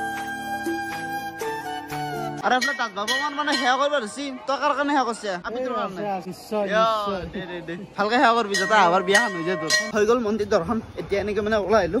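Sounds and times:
bell ringing: 2.5 - 4.2, 8.4 - 10.1.

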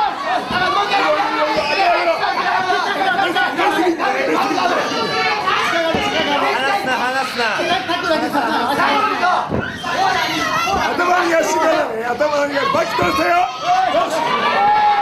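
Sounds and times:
crowd chatter: 0.0 - 15.0.

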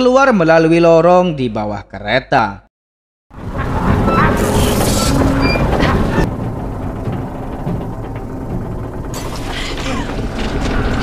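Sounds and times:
film music: 3.3 - 11.0
train wreck noise: 3.4 - 11.0.

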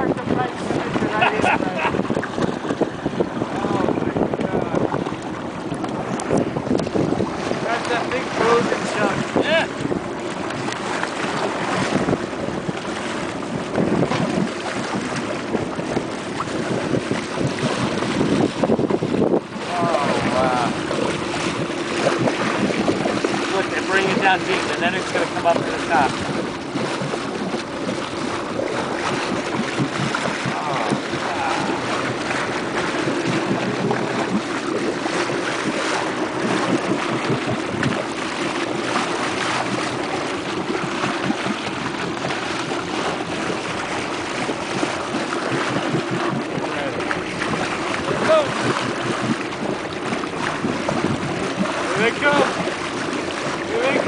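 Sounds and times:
water sloshing against boat: 0.0 - 54.0
wind on microphone: 0.0 - 54.0.

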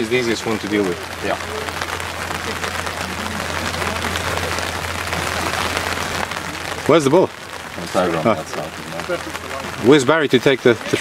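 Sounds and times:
faint distant voices: 0.0 - 11.0
microphone hiss: 0.0 - 11.0.

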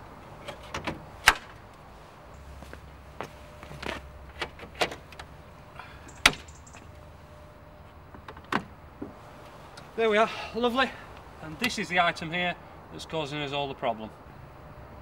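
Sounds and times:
low steady hum: 0.0 - 13.2.

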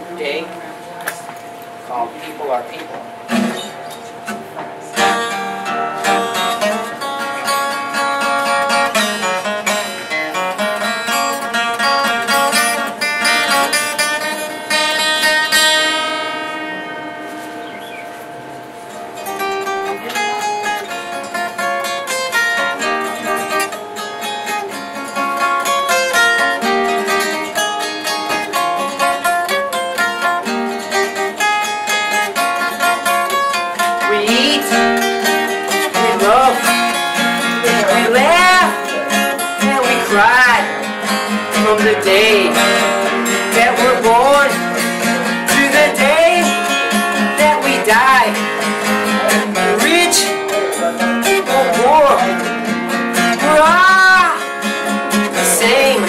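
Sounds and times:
acoustic guitar playing: 0.0 - 56.0.

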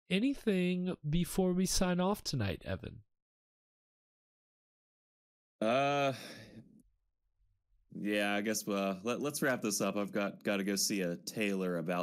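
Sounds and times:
man speaking: 0.1 - 3.0, 5.6 - 6.4, 7.9 - 12.0
man saying uh: 5.6 - 6.4
breathy sigh: 5.6 - 6.7.

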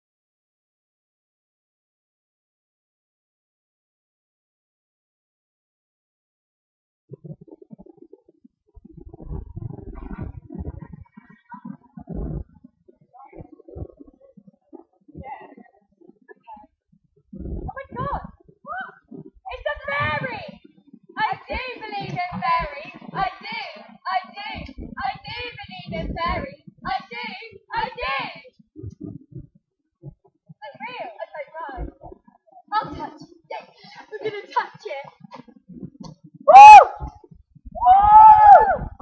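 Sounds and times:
wind buffeting microphone: 8.8 - 12.6, 17.3 - 20.6, 24.6 - 27.0.

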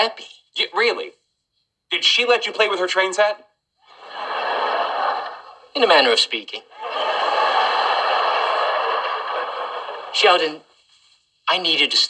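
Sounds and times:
studio audience laughing: 3.8 - 5.7, 6.7 - 10.5.

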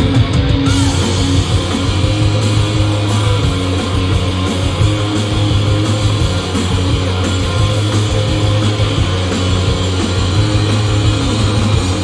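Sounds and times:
drums and cymbals: 0.0 - 12.0
electric guitars: 0.0 - 12.0.

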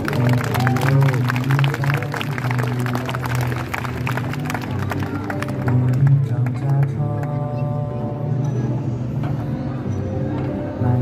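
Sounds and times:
faint backing music: 0.0 - 11.0.

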